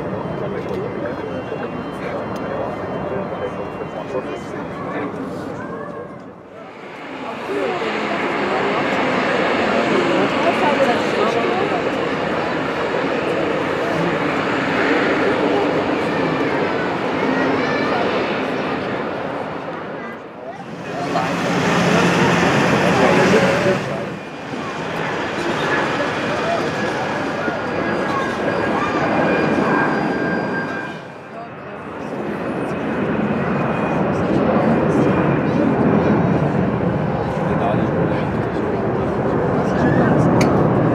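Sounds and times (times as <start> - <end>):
jet engines rushing: 0.0 - 40.9
people chattering: 0.0 - 40.9.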